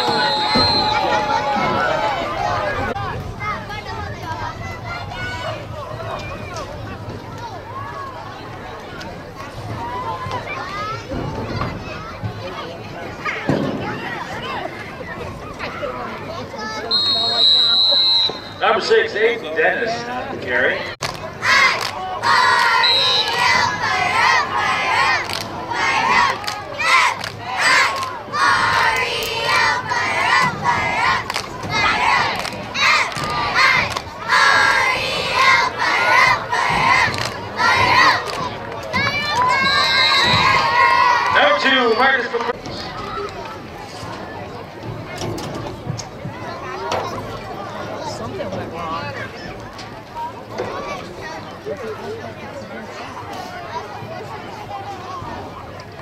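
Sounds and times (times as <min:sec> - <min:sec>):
crowd shouting and cheering: 0:00.0 - 0:56.0.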